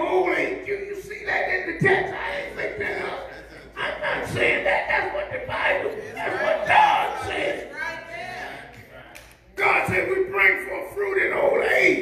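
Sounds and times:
congregation calling back: 0.0s - 12.0s
man shouting through microphone: 9.6s - 12.0s.

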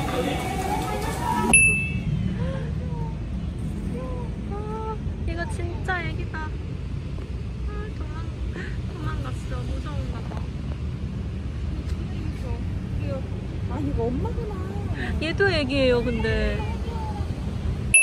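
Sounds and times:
urban traffic hum: 0.0s - 18.0s.

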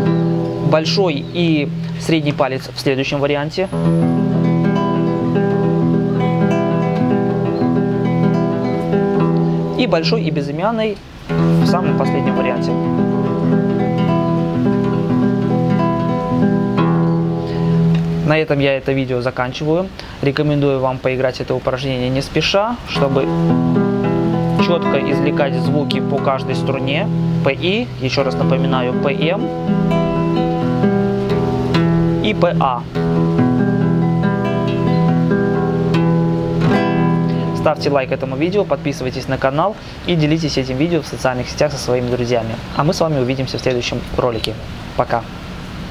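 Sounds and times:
fingerstyle classical guitar: 0.0s - 18.6s, 21.7s - 44.6s.

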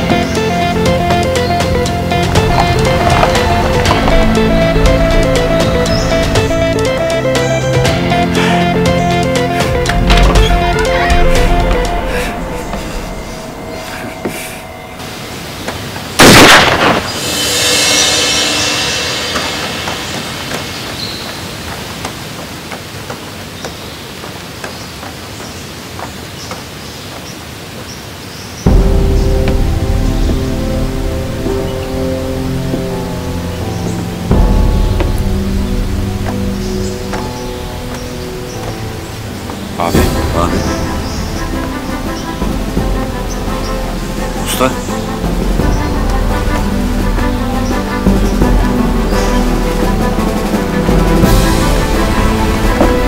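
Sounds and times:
dramatic background music: 0.0s - 21.9s, 28.6s - 53.0s
shotgun blast: 16.2s - 17.4s.

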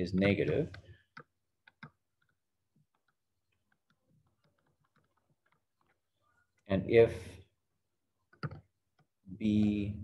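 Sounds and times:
stylus tapping on touchscreen: 0.2s - 6.0s.

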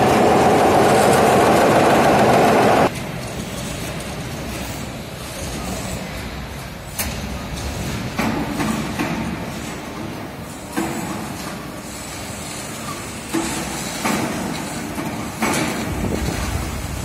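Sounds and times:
factory machinery rumbling: 0.0s - 17.0s.

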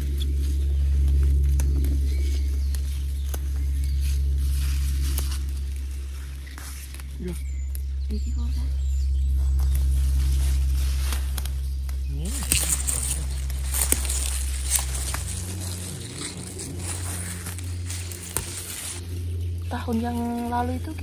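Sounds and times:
leaves rustling: 0.0s - 21.0s
low steady hum: 0.0s - 21.0s
stems snapping: 0.0s - 21.0s.

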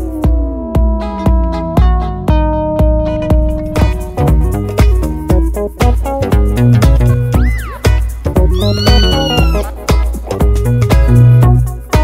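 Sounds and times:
upbeat music with steady beat: 0.0s - 12.0s
cat meowing: 8.5s - 9.7s.

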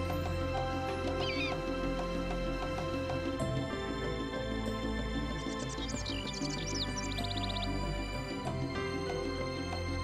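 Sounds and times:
soft background music: 0.0s - 10.0s
eagle cry: 1.2s - 1.6s.

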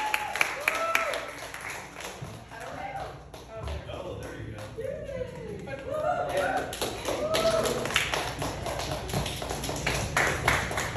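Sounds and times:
audience clapping: 0.0s - 10.9s.

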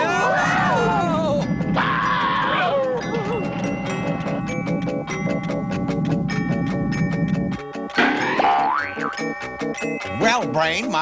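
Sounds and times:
cartoon music with mallet percussion: 0.9s - 11.0s
springy boing sound effect: 8.0s - 9.3s.

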